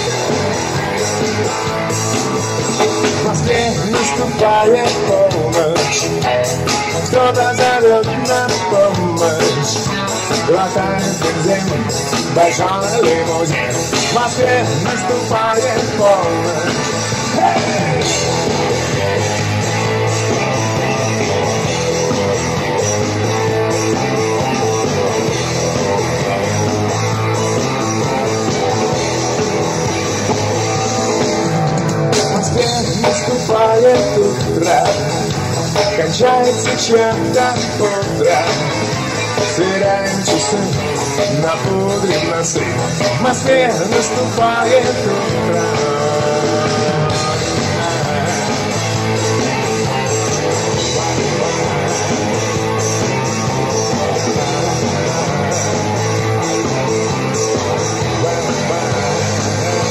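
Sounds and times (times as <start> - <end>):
live rock band playing: 0.0 - 59.9.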